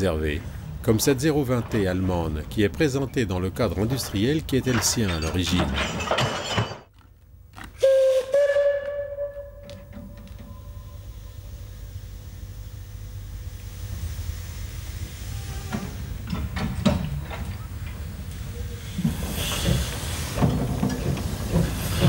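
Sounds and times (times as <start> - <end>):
steam locomotive whistle blasts: 7.8 - 11.7
steam hissing: 13.4 - 17.2, 18.0 - 22.0.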